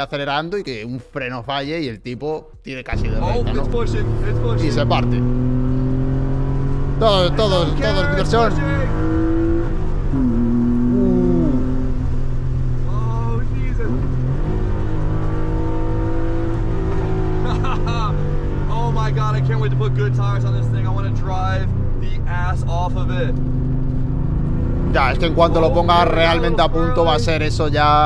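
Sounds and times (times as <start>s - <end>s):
man talking: 0.0s - 5.3s, 7.0s - 9.0s, 12.9s - 14.0s, 17.4s - 23.3s, 24.9s - 28.0s
car engine from inside cabin: 3.0s - 28.0s.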